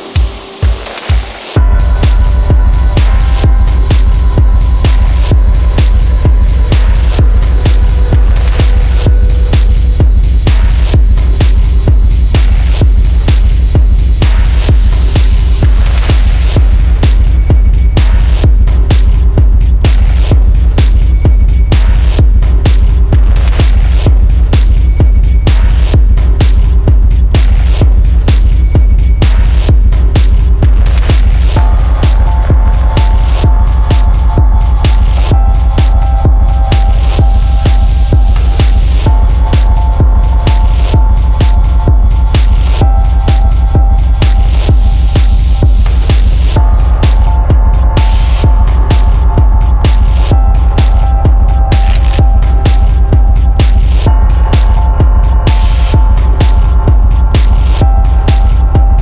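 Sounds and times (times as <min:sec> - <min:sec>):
deep bass: 0:00.0 - 0:59.0
techno kick drum: 0:00.0 - 0:59.0
held synth tone: 0:01.6 - 0:11.9, 0:31.6 - 0:49.8.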